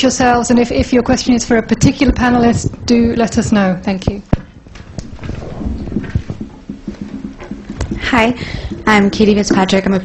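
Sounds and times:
microphone handling knocks: 1.9 - 10.0.

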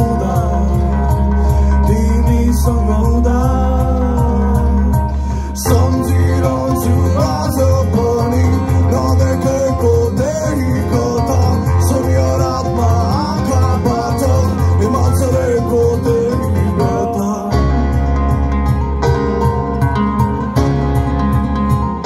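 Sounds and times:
person singing: 0.0 - 19.7
keyboard: 0.0 - 22.0
pulsing bass: 0.0 - 22.0
strummed acoustic guitars: 0.0 - 22.0.

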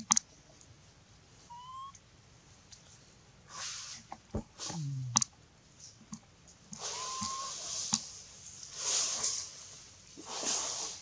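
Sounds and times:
sharp high animal chirp: 1.5 - 2.0, 6.8 - 7.6
thin whistle-like animal call: 1.5 - 2.0, 6.8 - 7.8.

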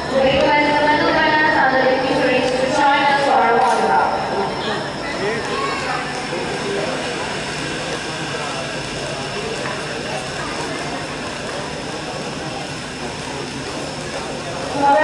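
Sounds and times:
faint steady high tone: 0.0 - 8.7
crowd hubbub: 0.0 - 15.0.

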